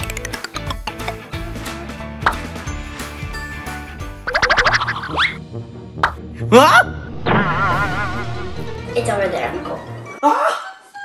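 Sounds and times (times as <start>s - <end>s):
background music: 0.0s - 11.0s
rising whistle-like glides: 7.1s - 8.9s.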